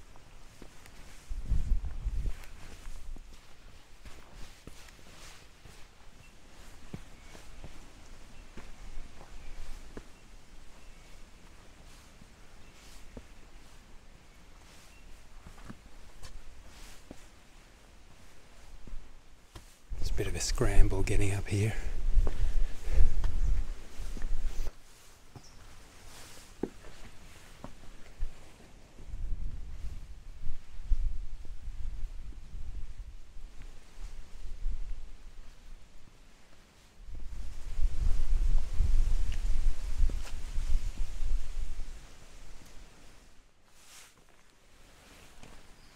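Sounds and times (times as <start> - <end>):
footsteps on sandy stony track: 0.1 - 29.9, 36.5 - 45.9
low rumbling on microphone: 1.3 - 2.4.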